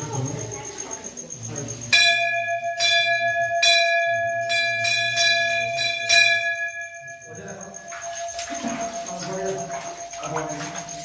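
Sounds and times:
metal bell ringing: 0:01.9 - 0:09.5.

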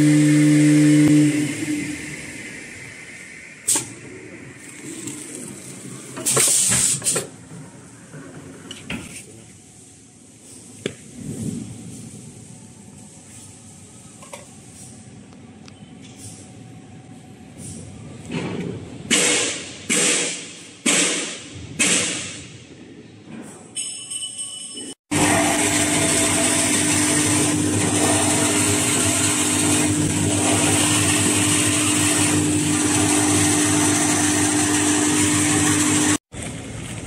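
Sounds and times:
machinery humming: 0:00.0 - 0:06.2.

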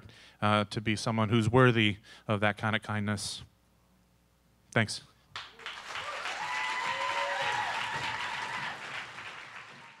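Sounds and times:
audience applauding: 0:05.4 - 0:10.0
voices cheering: 0:05.7 - 0:10.0.

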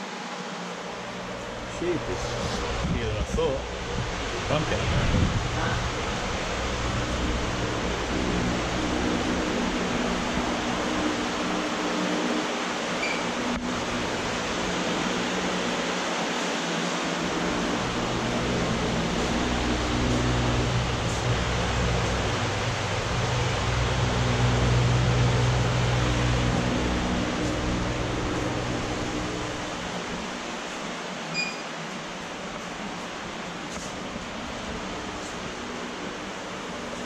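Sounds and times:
air conditioning hiss: 0:00.0 - 0:37.0
low ventilation hum: 0:00.0 - 0:37.0.

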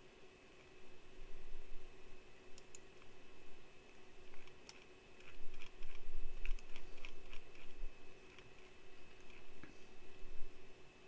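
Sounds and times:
steady hum: 0:00.0 - 0:11.0
keyboard typing: 0:04.3 - 0:09.6.

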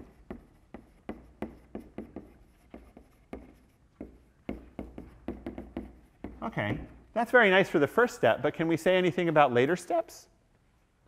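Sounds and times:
chalk tapping and scratching: 0:00.0 - 0:07.1.

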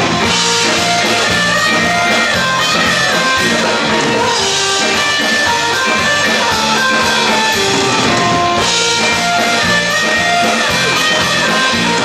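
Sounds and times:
held melody notes: 0:00.0 - 0:12.0
live folk band playing: 0:00.0 - 0:12.0.

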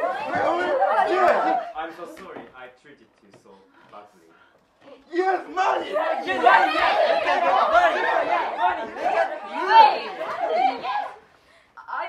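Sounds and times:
crowd shouting and cheering: 0:00.0 - 0:01.9, 0:05.2 - 0:11.3.

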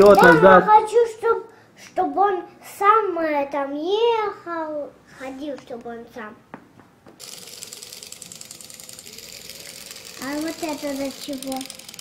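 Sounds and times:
toy motor rattling buzz: 0:00.0 - 0:00.5, 0:07.2 - 0:12.0.

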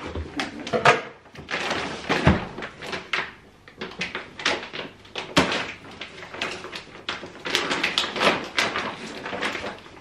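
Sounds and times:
fabric wrapping rustling and crinkling: 0:01.4 - 0:10.0.

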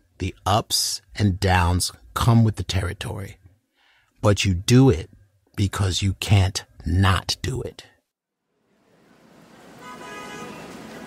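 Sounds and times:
wash of noise: 0:08.7 - 0:11.0
short horn-like toot: 0:09.8 - 0:10.7.

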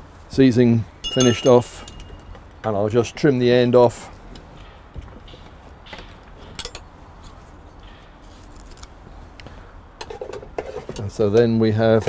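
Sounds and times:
hand tools clicking and knocking: 0:01.0 - 0:02.4.

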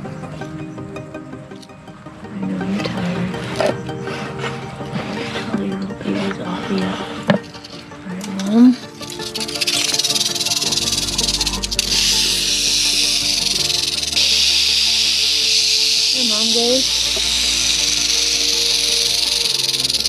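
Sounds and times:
background music: 0:00.0 - 0:20.0
rattlesnake rattling: 0:02.8 - 0:20.0.

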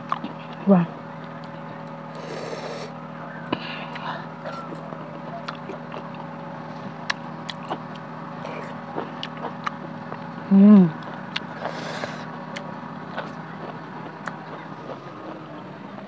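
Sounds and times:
chewing with mouth smacks: 0:00.0 - 0:00.6, 0:03.5 - 0:16.0
steady low hum: 0:00.0 - 0:16.0.

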